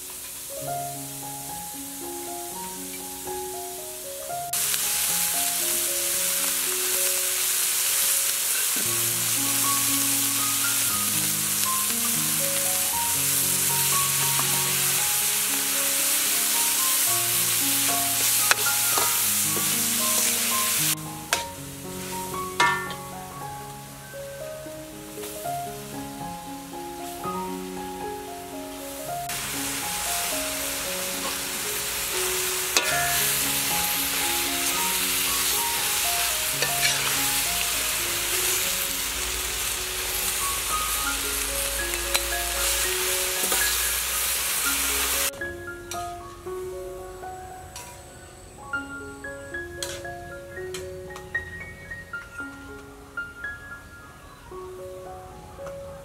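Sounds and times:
meat sizzling in a wok: 0:00.0 - 0:28.3, 0:29.2 - 0:46.0, 0:48.6 - 0:50.9
metal spatula scraping a pan: 0:18.5 - 0:20.3, 0:22.6 - 0:23.1, 0:32.8 - 0:33.2, 0:36.6 - 0:37.3, 0:43.4 - 0:44.0, 0:49.8 - 0:50.0.

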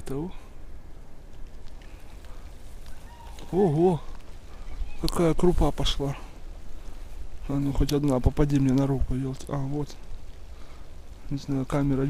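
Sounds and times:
snow pellets ticking: 0:00.0 - 0:12.0
steady low rumble: 0:00.0 - 0:12.0.

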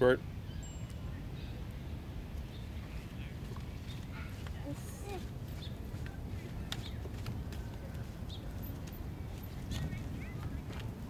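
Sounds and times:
child's footsteps on wooden boards: 0:04.4 - 0:11.0.

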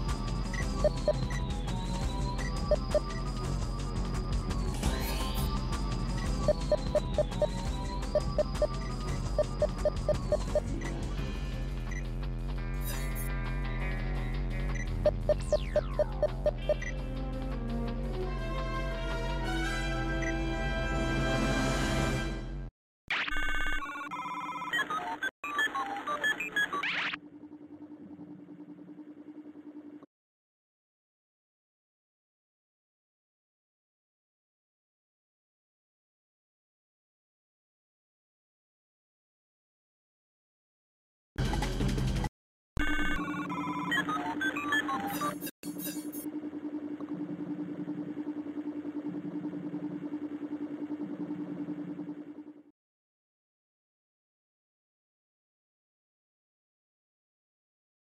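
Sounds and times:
electronic bleeps and chirps: 0:00.6 - 0:03.2, 0:06.4 - 0:10.7, 0:14.8 - 0:16.9, 0:42.8 - 0:52.7
low pulsing hum: 0:46.3 - 0:52.7.

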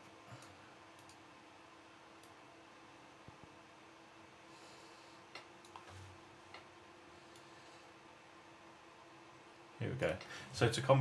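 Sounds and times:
faint room hum: 0:00.0 - 0:11.0
computer mouse clicks: 0:00.4 - 0:01.2, 0:05.3 - 0:06.7.

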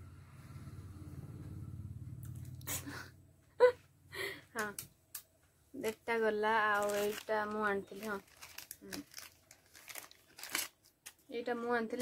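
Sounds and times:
person speaking: 0:05.7 - 0:09.1
packaging crinkling: 0:05.8 - 0:11.3.

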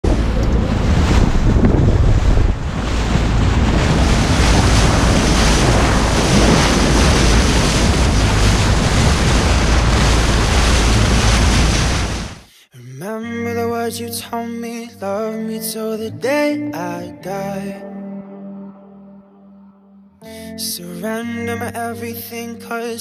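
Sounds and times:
wind buffeting microphone: 0:00.0 - 0:12.4
water rushing past boat hull: 0:00.0 - 0:12.5.

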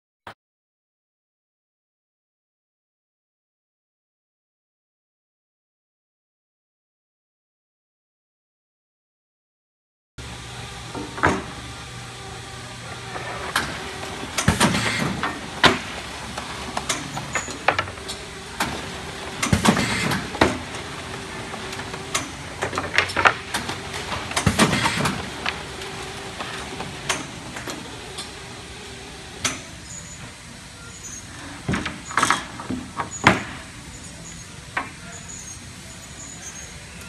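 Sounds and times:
packaging machinery humming: 0:10.2 - 0:37.0.

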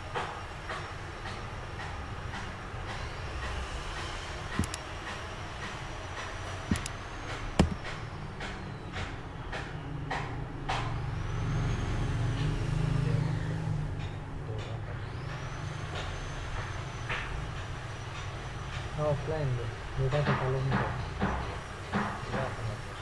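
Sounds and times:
sharp clicks: 0:04.5 - 0:04.8, 0:06.7 - 0:07.0.

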